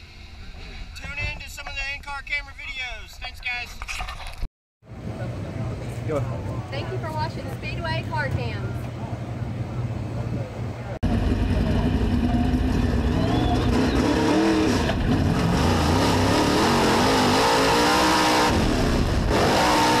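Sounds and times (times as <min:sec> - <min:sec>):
race car engine revving: 0:11.0 - 0:20.0.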